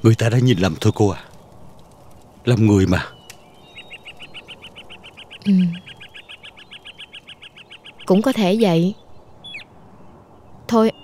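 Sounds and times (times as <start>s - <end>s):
rapid high animal chirps: 3.1s - 9.7s.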